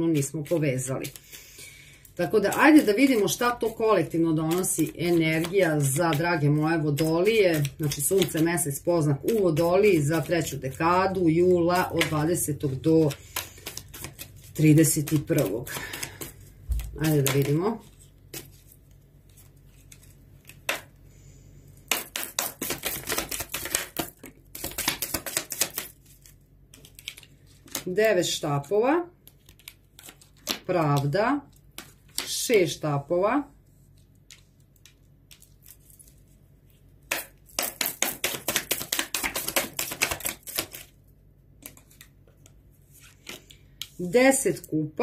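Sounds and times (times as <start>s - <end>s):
cards being shuffled: 0.1s - 1.4s, 2.0s - 20.9s, 21.9s - 28.0s, 29.2s - 32.4s, 33.9s - 41.0s, 41.6s - 44.1s.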